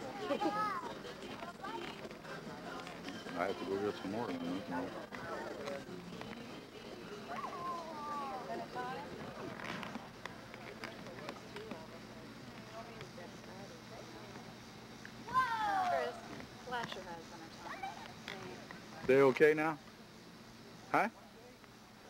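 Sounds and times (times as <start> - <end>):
young children calling out: 15.3 - 16.2.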